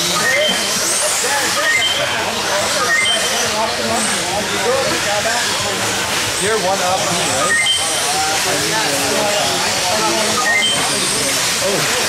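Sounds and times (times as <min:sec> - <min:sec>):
many people talking: 0:00.0 - 0:12.0
radio-controlled buggies whining: 0:00.0 - 0:12.0.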